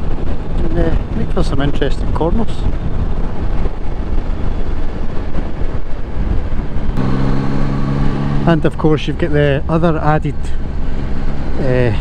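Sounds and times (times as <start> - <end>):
wind and road noise: 0.0 - 12.0
motorcycle engine drone: 2.7 - 12.0.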